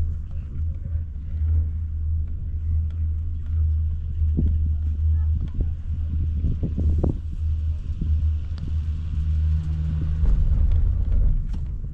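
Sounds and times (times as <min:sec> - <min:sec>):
chairlift low rumble: 0:00.0 - 0:11.9.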